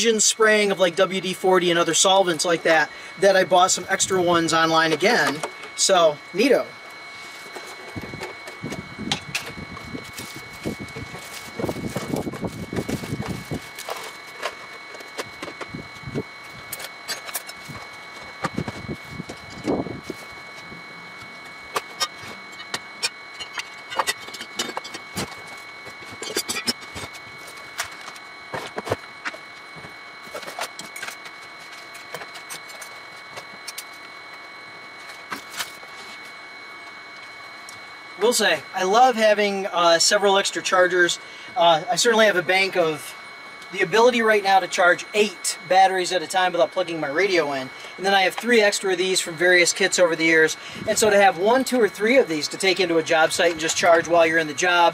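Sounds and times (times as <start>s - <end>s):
faint high whine: 0.0s - 54.9s
tools and containers rattling: 21.8s - 27.2s.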